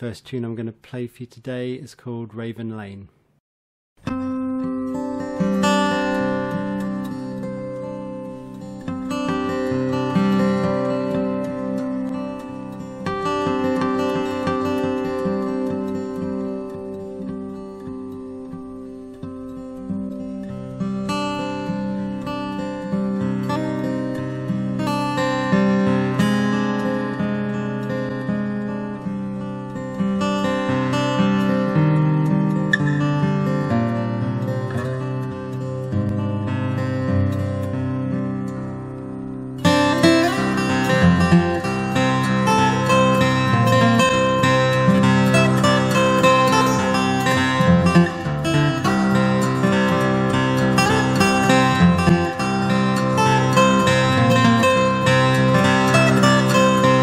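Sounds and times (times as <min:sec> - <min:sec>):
fingerstyle acoustic guitar: 0:04.0 - 0:57.0.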